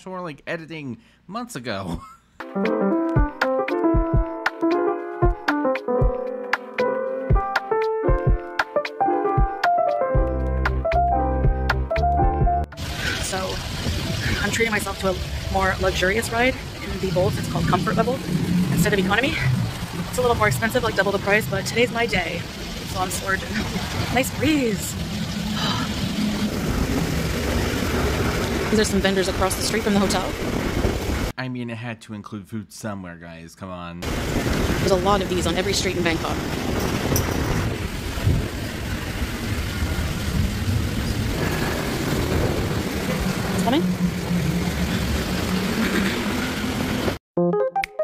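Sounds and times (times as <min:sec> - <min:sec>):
keyboard music: 0:02.4 - 0:13.0, 0:47.4 - 0:48.0
passing traffic rumble: 0:12.7 - 0:31.3, 0:34.0 - 0:47.2
wind buffeting microphone: 0:12.8 - 0:31.3, 0:34.0 - 0:47.2.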